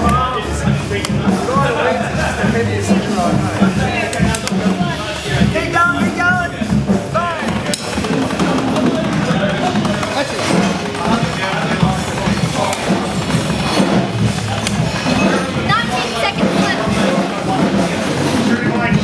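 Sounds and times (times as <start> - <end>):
music with drums and voices: 0.0 - 19.0.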